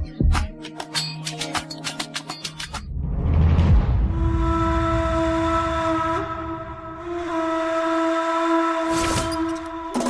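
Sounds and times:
long held whistle-like tone: 0:04.3 - 0:10.0.

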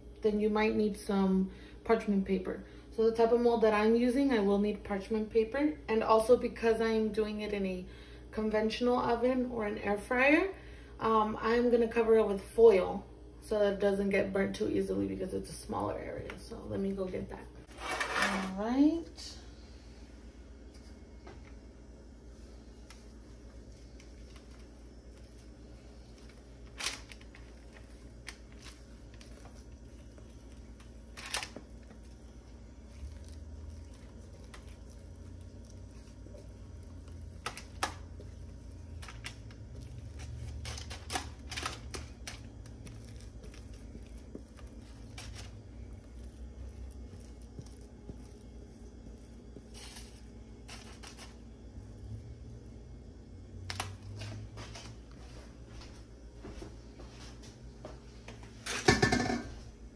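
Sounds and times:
low steady hum: 0:00.0 - 0:59.9
spatula scraping metal bowl: 0:17.7 - 0:18.6.

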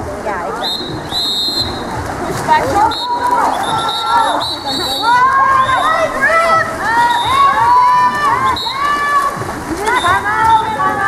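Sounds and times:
referee whistle blasts: 0:00.6 - 0:01.9, 0:02.9 - 0:05.9
spectators shouting and cheering: 0:00.6 - 0:11.0.

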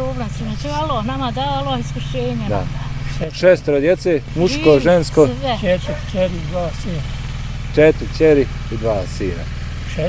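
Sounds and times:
engine idling: 0:00.0 - 0:10.0
person speaking: 0:02.4 - 0:02.9, 0:04.3 - 0:07.1.

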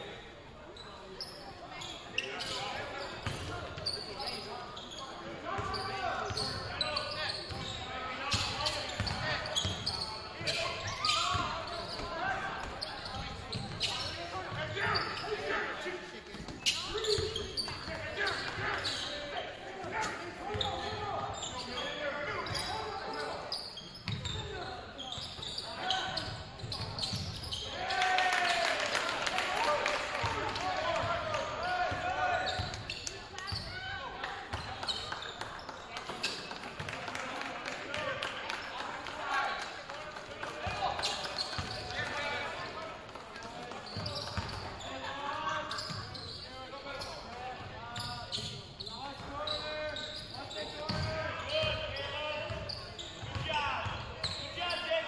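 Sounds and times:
voices echoing in gymnasium: 0:00.0 - 0:55.0.

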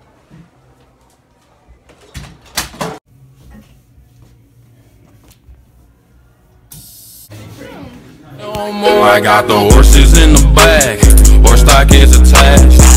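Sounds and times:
music: 0:08.6 - 0:12.9.

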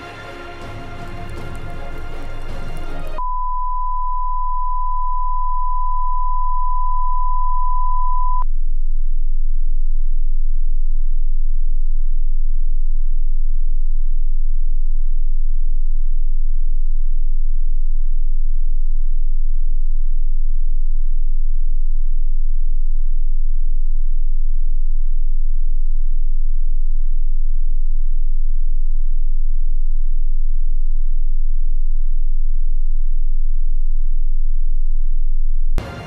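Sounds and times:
music: 0:00.0 - 0:03.2
deep electronic hum: 0:00.0 - 0:36.0
high electronic sine tone: 0:03.2 - 0:08.5.

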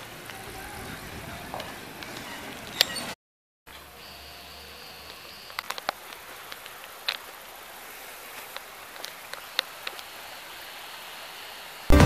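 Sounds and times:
steady hiss: 0:03.8 - 0:11.9.

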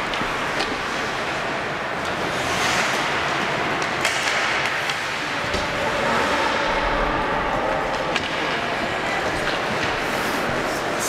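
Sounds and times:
skates on ice: 0:00.0 - 0:11.0
skate scrape: 0:00.1 - 0:11.0.

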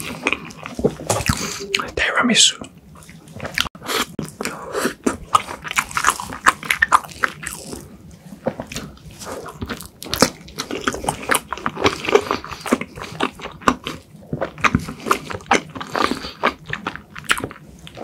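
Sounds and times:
wet sticky chewing: 0:02.9 - 0:18.0.

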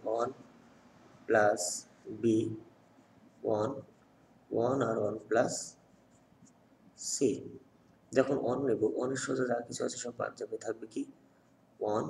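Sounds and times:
person speaking: 0:00.0 - 0:12.0
marker pen scratching on paper: 0:01.8 - 0:06.8.

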